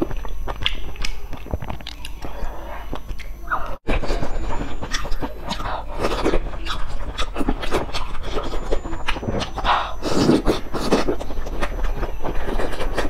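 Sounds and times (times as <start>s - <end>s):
mouth clicks and smacks: 0.0s - 3.8s, 4.6s - 13.0s
chewing and slurping noodles: 3.9s - 13.0s.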